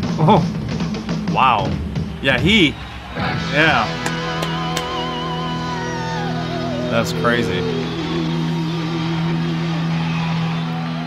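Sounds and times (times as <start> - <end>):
rock band closing chord: 2.5 - 10.7.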